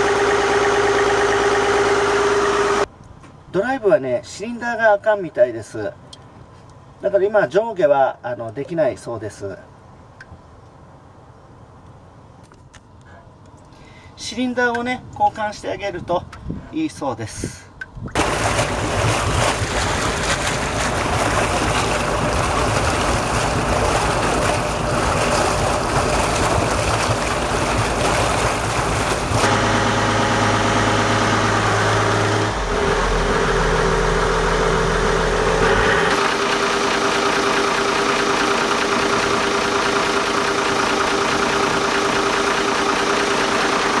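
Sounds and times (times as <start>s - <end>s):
diesel engine running: 0.0s - 2.9s, 18.2s - 44.0s.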